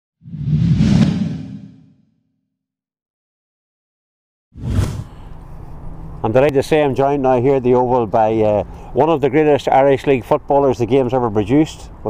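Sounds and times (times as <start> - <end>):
whoosh: 0.2 - 2.0, 4.6 - 5.2.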